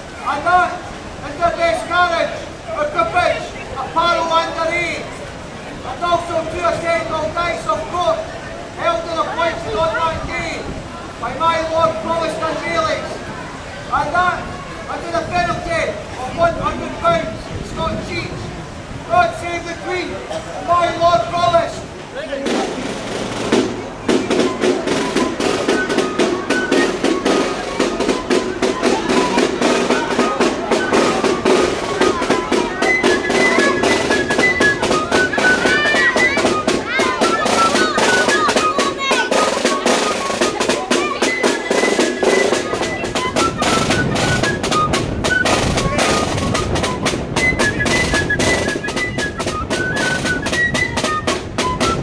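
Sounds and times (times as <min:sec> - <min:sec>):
flutes playing a march: 0:00.0 - 0:18.5, 0:22.4 - 0:52.0
side drum beating: 0:22.4 - 0:52.0.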